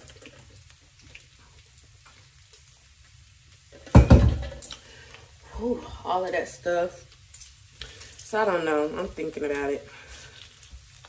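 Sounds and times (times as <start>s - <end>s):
light crackles: 0.0s - 3.9s, 4.6s - 11.0s
bacon sizzling in a pan: 0.0s - 11.0s.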